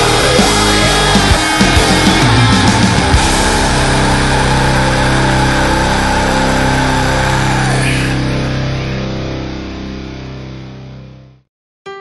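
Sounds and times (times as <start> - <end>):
heavy rock distorted chord: 0.0 - 11.4.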